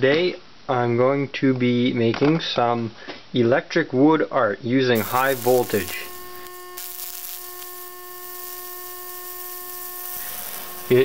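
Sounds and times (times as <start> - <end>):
high hiss: 5.0 - 11.0
transformer humming: 5.0 - 11.0.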